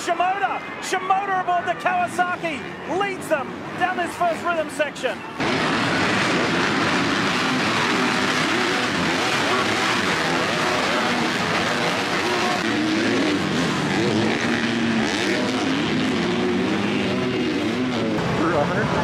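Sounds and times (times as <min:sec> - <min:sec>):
motorbike engines revving: 0:00.0 - 0:19.0.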